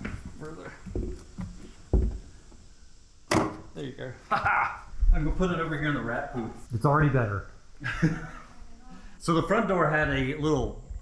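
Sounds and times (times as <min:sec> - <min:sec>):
sharp dull thump: 0:03.3 - 0:03.7.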